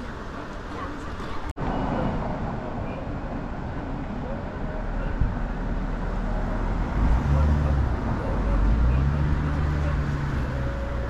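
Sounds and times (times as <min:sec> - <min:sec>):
faint voices: 0:00.0 - 0:11.0
road traffic noise: 0:00.0 - 0:11.0
vehicle engine hum: 0:00.0 - 0:11.0.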